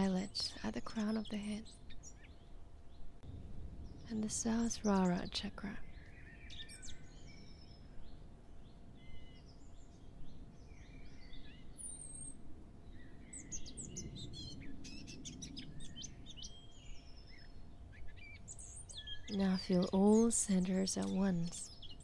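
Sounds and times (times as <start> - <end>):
birds chirping and singing: 0.0 - 3.1, 3.9 - 22.0
faint steady hum: 0.0 - 22.0.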